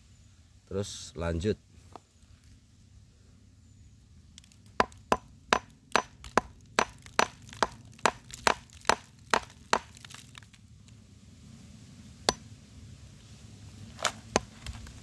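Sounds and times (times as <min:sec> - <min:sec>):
hammer chipping rock: 0:04.8 - 0:10.2.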